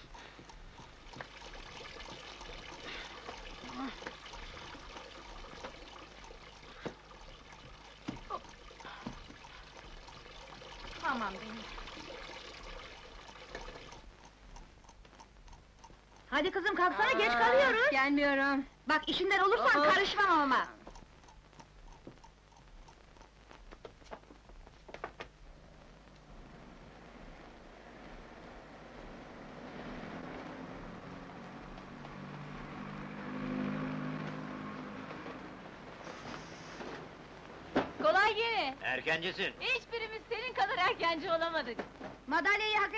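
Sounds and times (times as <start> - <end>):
soft ticks: 0.0 - 16.8, 18.6 - 25.3
faint running water: 0.0 - 26.5, 27.2 - 42.9
street traffic: 26.3 - 37.6
brief hiss: 36.0 - 37.0.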